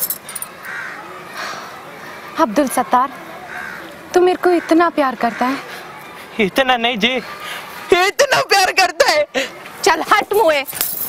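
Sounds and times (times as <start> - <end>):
harsh animal calls: 3.2 - 5.7.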